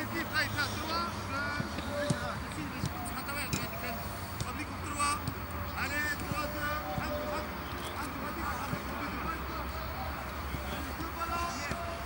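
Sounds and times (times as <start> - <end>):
voices calling and shouting: 0.0 - 12.0
balls being kicked: 1.6 - 3.8, 11.4 - 12.0.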